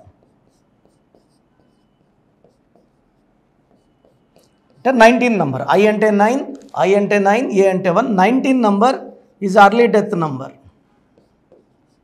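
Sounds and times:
marker pen squeaking on whiteboard: 0:00.0 - 0:05.7, 0:10.7 - 0:12.0.

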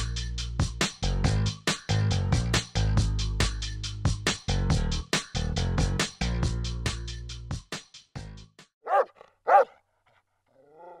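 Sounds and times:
dog barking: 0:08.8 - 0:09.8.

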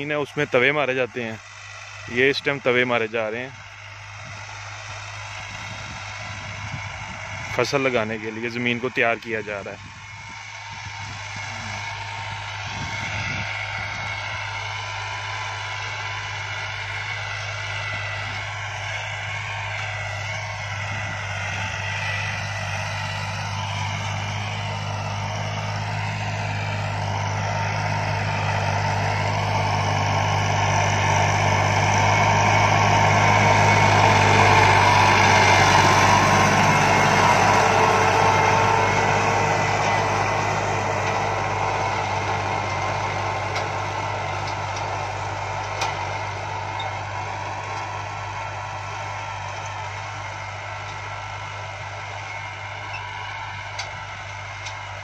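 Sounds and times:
tractor engine running: 0:00.0 - 0:55.0.

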